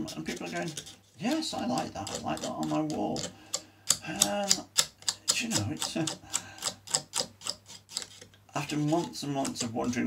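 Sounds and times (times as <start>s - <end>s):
regular mechanical ticking: 1.7s - 8.2s.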